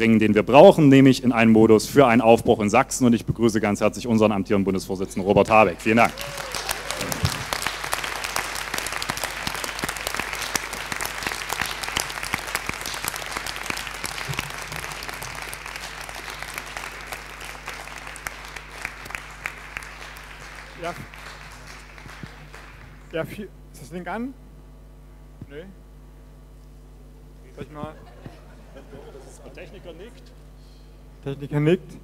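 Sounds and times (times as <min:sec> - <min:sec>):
audience applauding: 0:05.6 - 0:23.2.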